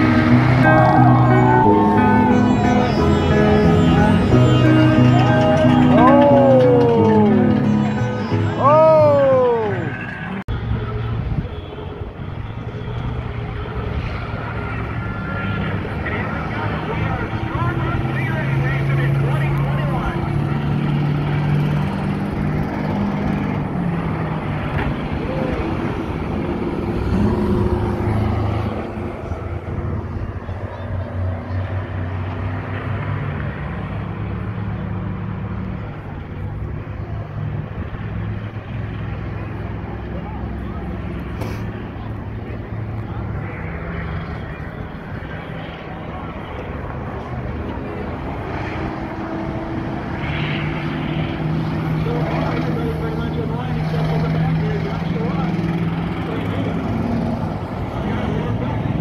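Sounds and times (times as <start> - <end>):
crowd chatter: 0.0 - 32.8, 33.4 - 59.0
racing bus engines: 0.0 - 59.0.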